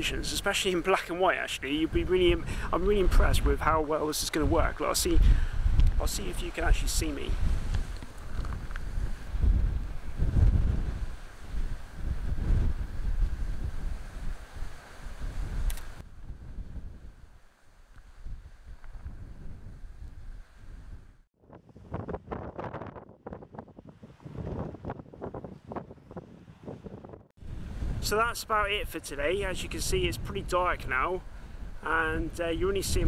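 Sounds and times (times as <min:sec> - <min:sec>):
wind buffeting microphone: 0:01.8 - 0:33.0.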